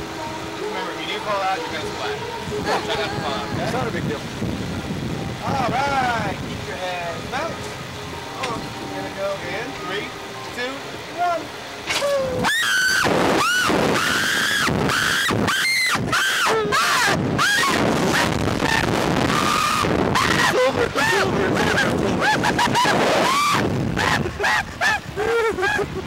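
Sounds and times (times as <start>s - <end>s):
people screaming and laughing: 2.4s - 4.1s, 11.9s - 26.0s.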